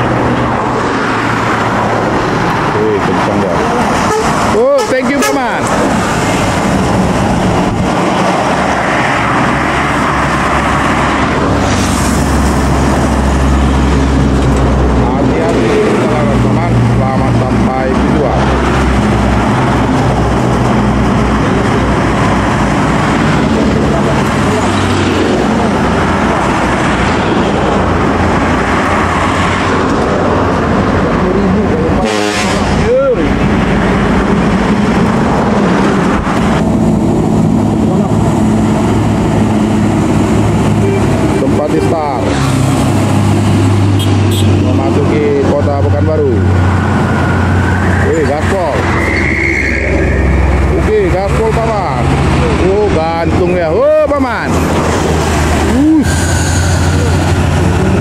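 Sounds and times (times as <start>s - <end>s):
buses and trucks driving past: 0.0s - 58.0s
tyre noise on road: 0.0s - 58.0s.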